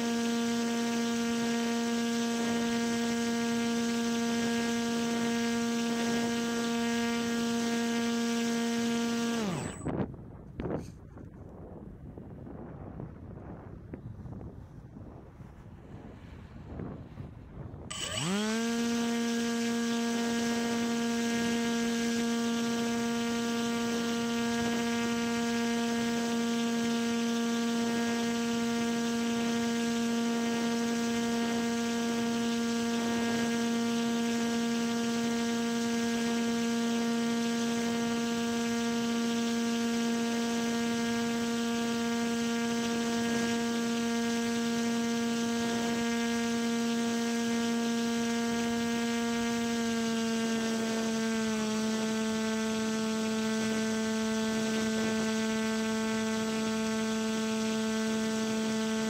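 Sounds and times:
model paramotor humming: 0.0 - 11.3, 15.0 - 59.0
faint wind: 0.0 - 59.0.

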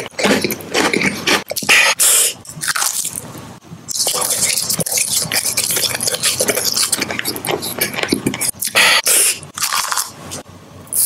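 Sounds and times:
wet mouth sounds: 0.0 - 3.2, 3.9 - 10.2.

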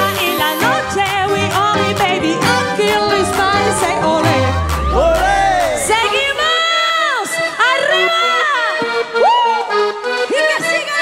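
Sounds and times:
live band music: 0.0 - 7.8
crowd cheering: 1.2 - 7.6
person singing long calls: 2.0 - 6.6.

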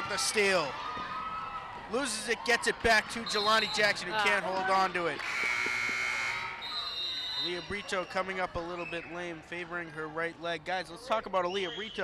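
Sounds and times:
scoreboard horn blast: 5.2 - 6.5.

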